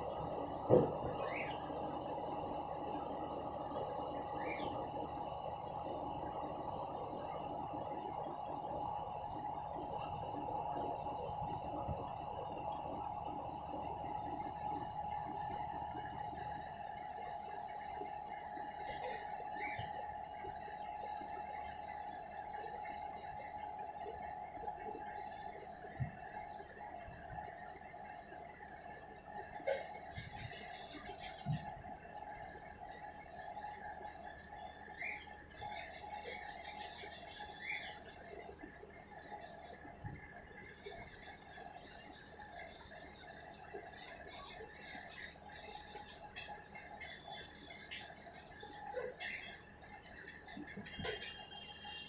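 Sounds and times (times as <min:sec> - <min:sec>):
steady background hum: 0:00.0 - 0:52.0.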